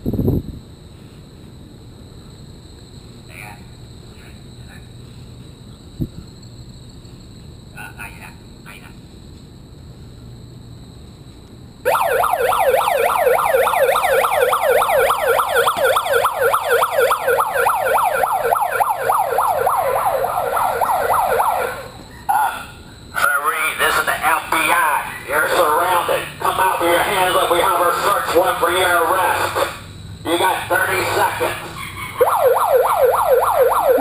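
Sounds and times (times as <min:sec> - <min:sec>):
megaphone siren whooping: 0:11.9 - 0:22.1, 0:24.6 - 0:34.0
distorted sound through megaphone: 0:23.2 - 0:31.8.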